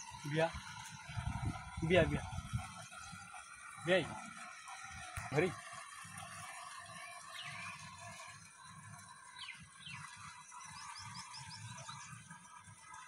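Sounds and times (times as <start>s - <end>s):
low uneven rumble: 0.2s - 3.2s
small birds chirping: 7.2s - 7.8s, 9.3s - 12.2s.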